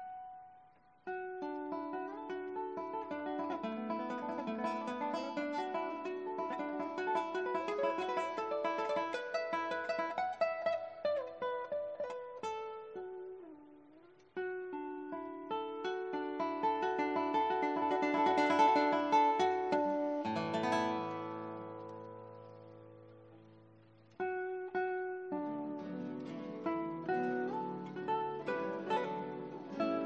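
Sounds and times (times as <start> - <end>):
classical guitar ensemble playing: 1.0 - 30.0.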